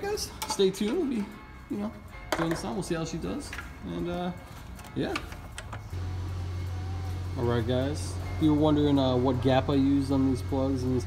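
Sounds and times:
steady low hum: 6.0s - 11.0s.

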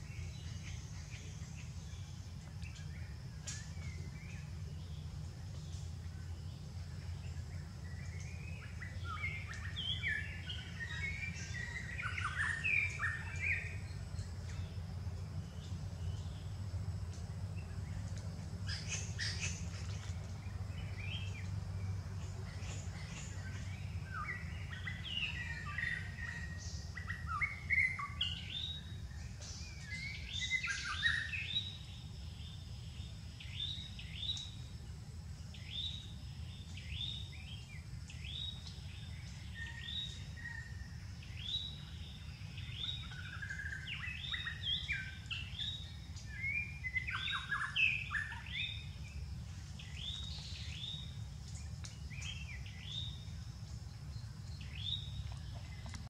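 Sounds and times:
birds chirping: 0.0s - 34.6s, 35.5s - 56.0s
steady low hum: 0.0s - 56.0s.

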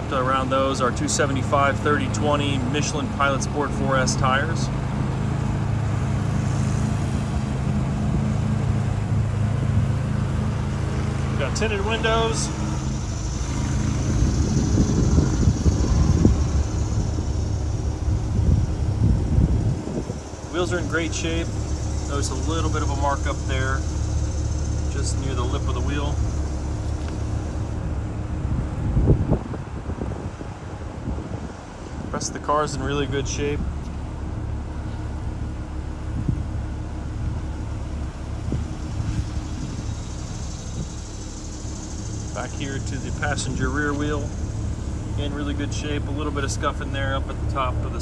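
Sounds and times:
low motor hum: 0.0s - 48.0s
low rumble of traffic: 0.0s - 48.0s
wind buffeting microphone: 11.4s - 48.0s.

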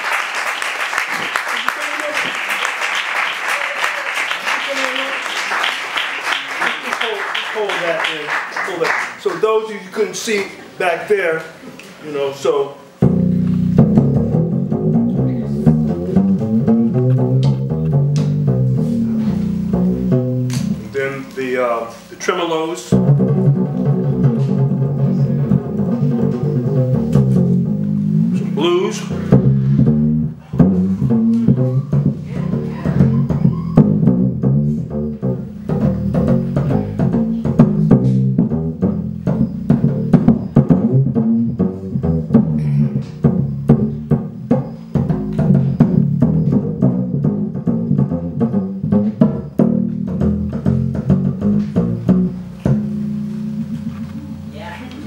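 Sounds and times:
low string struck with drumsticks: 13.0s - 20.9s.

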